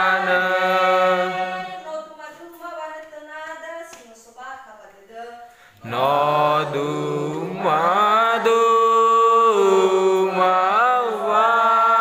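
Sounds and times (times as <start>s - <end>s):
congregation singing a hymn: 0.0s - 2.0s, 5.8s - 12.0s.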